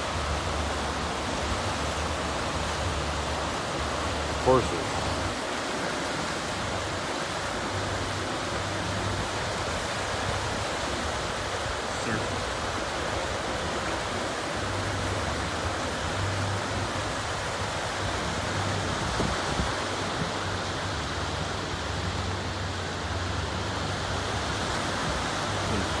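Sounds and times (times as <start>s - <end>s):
waves breaking on beach: 0.0s - 26.0s.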